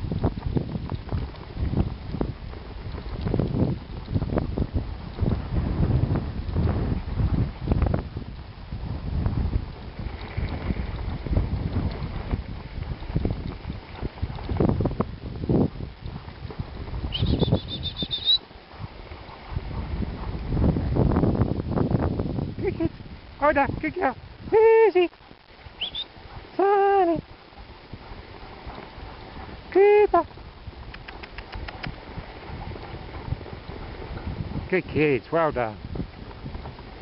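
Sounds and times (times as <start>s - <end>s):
dog sled rumbling on snow: 0.0s - 37.0s
wind buffeting microphone: 0.0s - 37.0s.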